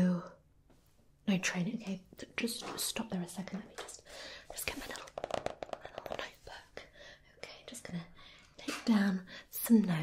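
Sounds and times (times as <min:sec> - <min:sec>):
person whispering: 0:03.3 - 0:05.2, 0:05.8 - 0:09.0.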